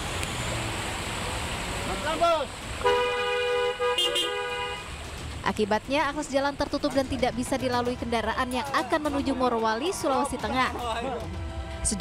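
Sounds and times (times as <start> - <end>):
car horn honking: 2.8 - 5.0.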